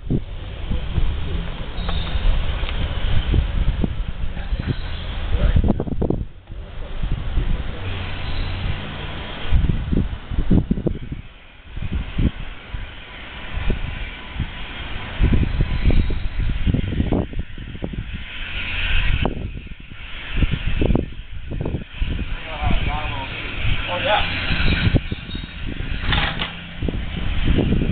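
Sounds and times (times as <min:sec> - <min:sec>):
wind buffeting microphone: 0:00.0 - 0:27.9.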